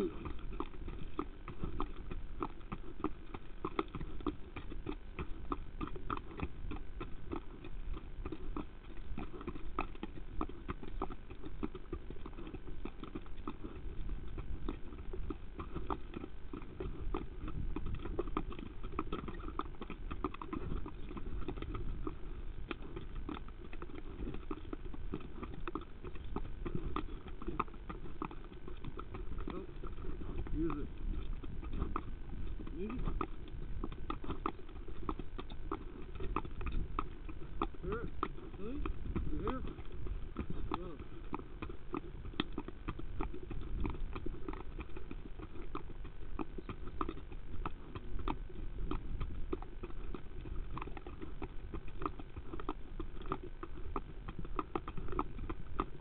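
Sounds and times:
horse hoofbeats: 0.0 - 56.0.

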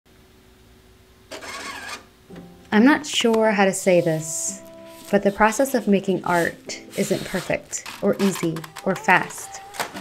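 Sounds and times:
printer motors whirring: 1.3 - 2.1.

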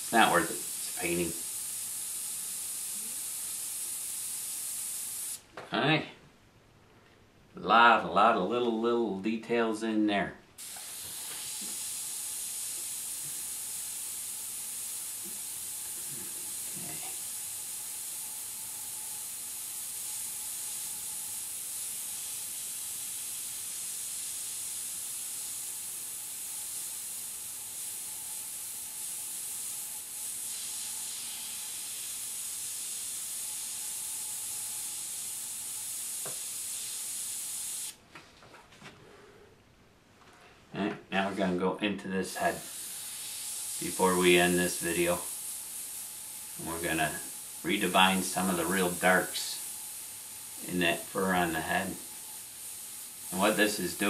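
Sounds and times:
airbrush hissing: 0.0 - 5.4, 10.6 - 38.0, 42.3 - 54.0.

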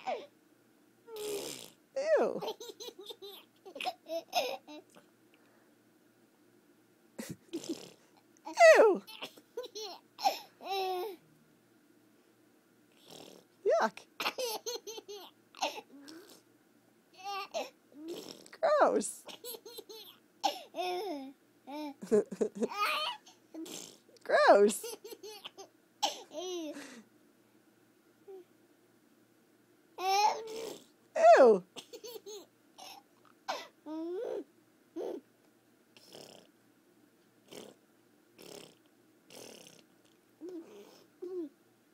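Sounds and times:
toddler laughing: 2.4 - 5.0, 8.5 - 11.2, 14.2 - 15.8, 19.3 - 23.3, 24.8 - 26.9.

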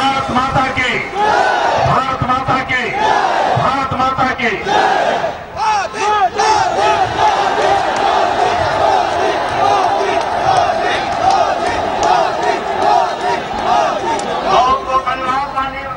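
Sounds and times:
crowd shouting and cheering: 0.0 - 15.9.

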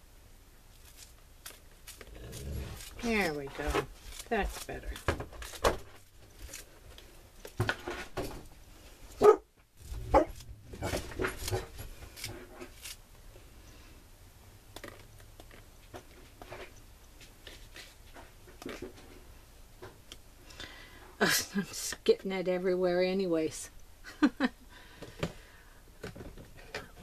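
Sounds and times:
dog barking and whimpering: 9.2 - 9.5, 10.1 - 10.4.

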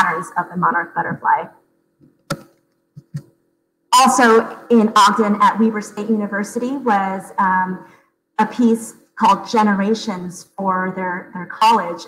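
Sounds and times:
speech: 0.0 - 1.6, 4.0 - 7.8, 8.4 - 12.0.

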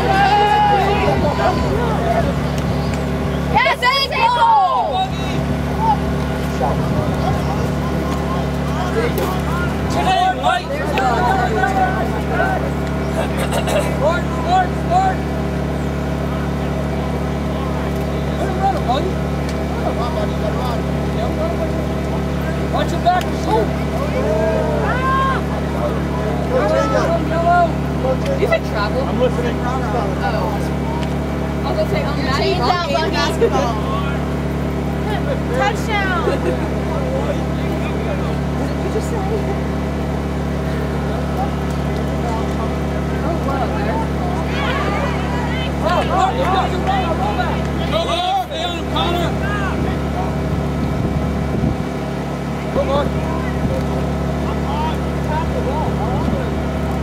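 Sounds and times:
players and spectators shouting: 0.0 - 50.8
low mechanical hum: 0.0 - 57.0.

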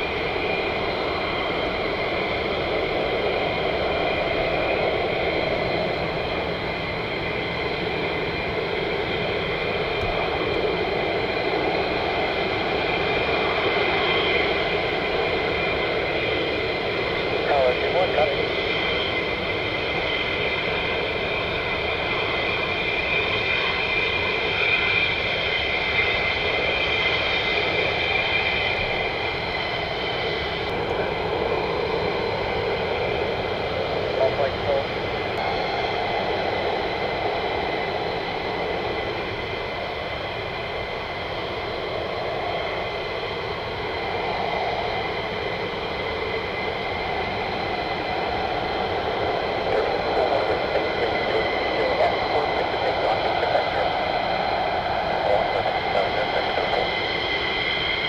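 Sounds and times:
high-pitched turbine whine: 0.0 - 58.0
jet engines running: 0.0 - 58.0.

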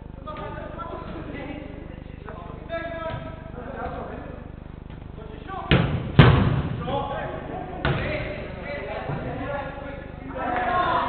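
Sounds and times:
steady low hum: 0.0 - 11.0
football thudding against boards: 5.7 - 6.9.

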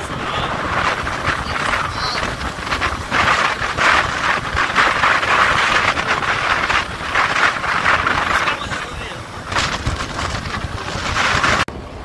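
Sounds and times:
road noise: 0.0 - 12.0
wind rush: 0.0 - 12.0.

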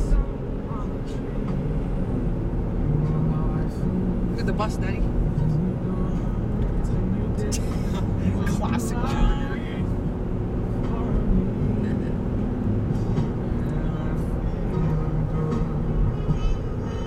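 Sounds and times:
road and engine rumble: 0.0 - 17.0
song on car stereo: 0.0 - 17.0.

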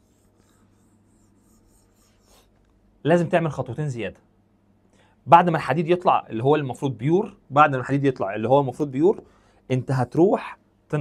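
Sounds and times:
pen scratching on glass: 0.0 - 2.5
low steady hum: 0.0 - 11.0.

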